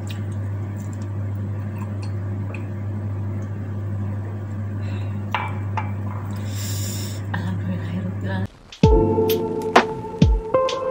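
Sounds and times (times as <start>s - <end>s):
steady low hum: 0.0s - 10.6s.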